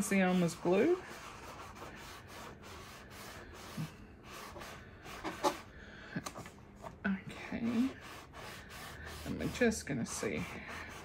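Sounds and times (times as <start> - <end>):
damp sponge scrubbing canvas: 0.0 - 5.7, 7.5 - 11.0.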